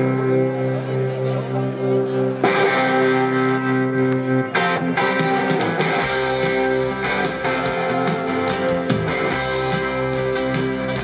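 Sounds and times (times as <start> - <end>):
live band with electric guitar: 0.0 - 11.0.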